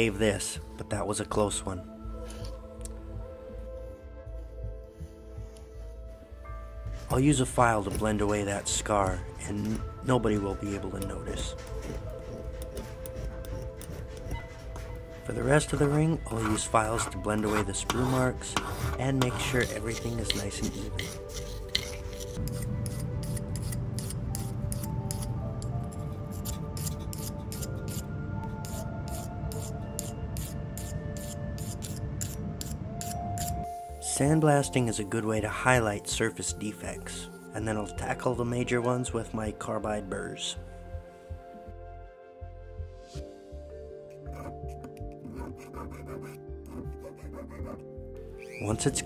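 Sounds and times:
background music: 0.0 - 49.0
hand file rasping on metal: 11.0 - 25.3, 26.3 - 33.6, 44.2 - 47.8.

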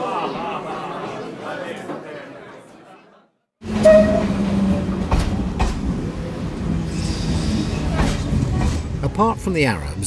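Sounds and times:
wheels clacking over rail joints: 3.7 - 6.1.

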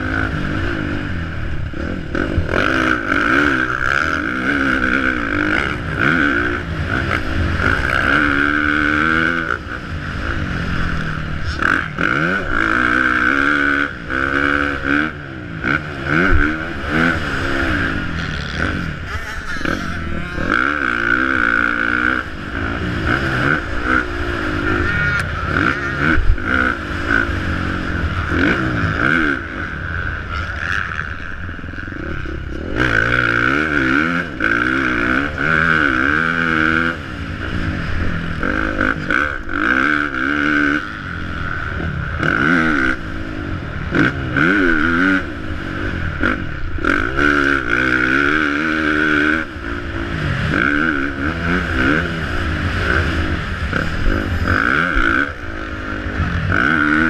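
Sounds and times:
motocross bike engine revving: 0.0 - 57.0.

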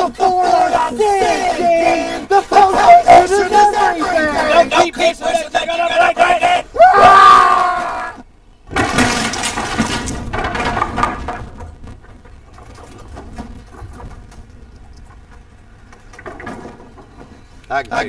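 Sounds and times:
man yelling: 0.0 - 8.2
timber cracking: 8.7 - 17.4
wooden structure collapsing crash: 8.7 - 17.4
scattered clattering: 8.7 - 18.0.

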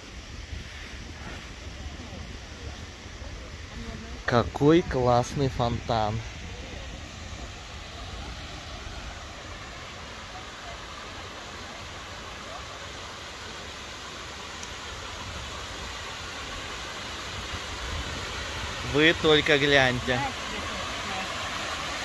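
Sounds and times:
fountain water splashing: 0.0 - 22.0.

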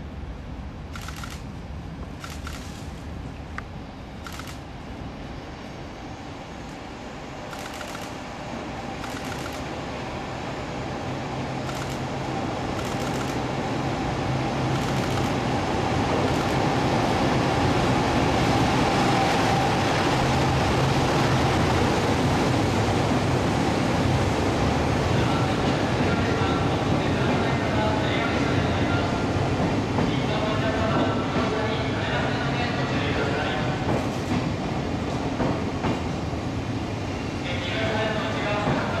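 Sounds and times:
electric locomotive hum: 0.0 - 29.7
train coaches rolling slowly: 0.0 - 39.0
wheels rumbling on rail: 0.0 - 39.0.

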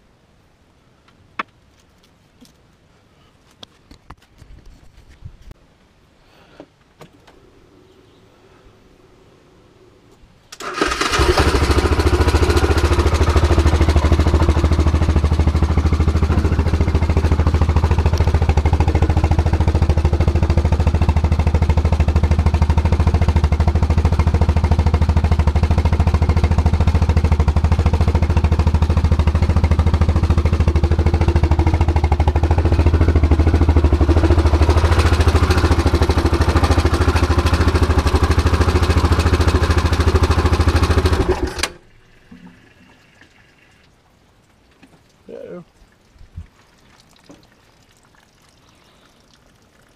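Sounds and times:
engine running loud and close: 10.6 - 42.6.

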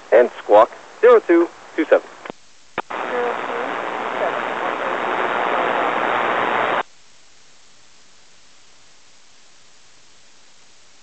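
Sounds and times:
radio static hiss: 0.0 - 7.0
weak voice over radio: 0.1 - 2.1, 2.9 - 6.2.

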